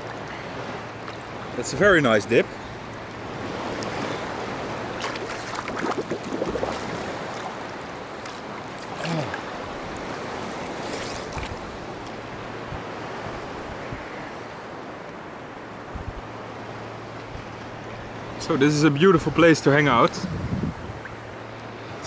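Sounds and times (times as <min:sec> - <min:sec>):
water splashes: 0:00.0 - 0:12.3
seawater sloshing and lapping: 0:02.5 - 0:12.1.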